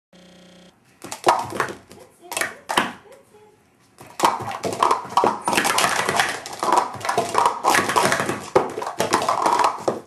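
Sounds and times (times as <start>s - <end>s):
plastic cups clattering: 4.0s - 10.0s.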